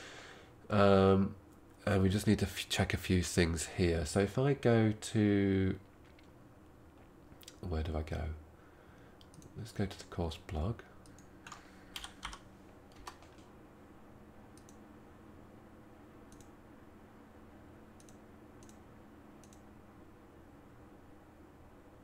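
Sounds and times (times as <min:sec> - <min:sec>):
steady low hum: 0:00.0 - 0:22.0
computer keyboard clicks: 0:11.0 - 0:13.5, 0:18.0 - 0:18.8.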